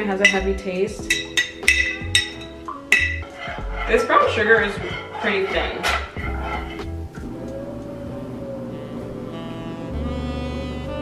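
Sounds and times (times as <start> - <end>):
background music with bass pulse: 0.0 - 11.0
metal spoon clinking on glass jar: 0.2 - 3.3.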